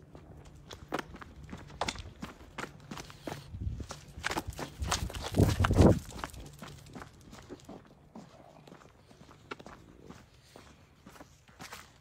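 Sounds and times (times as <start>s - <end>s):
footsteps on hard surface: 0.1s - 12.0s.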